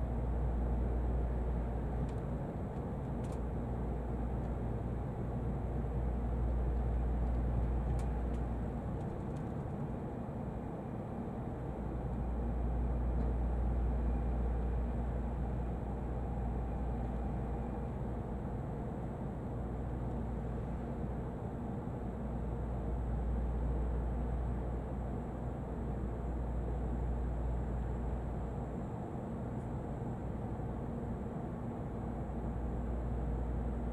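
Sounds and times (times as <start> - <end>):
train cabin deep rumble: 0.0 - 22.0.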